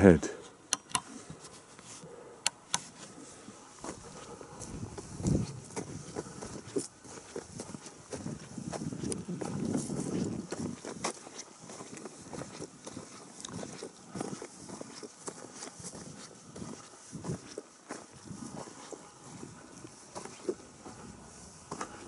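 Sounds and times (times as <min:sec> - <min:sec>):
footsteps on gravelly ground: 0:02.9 - 0:22.0.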